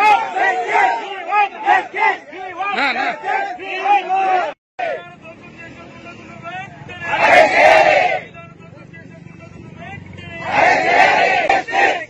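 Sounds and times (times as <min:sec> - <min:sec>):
crowd shouting a slogan: 0:00.0 - 0:05.7, 0:06.4 - 0:08.4, 0:10.2 - 0:12.0.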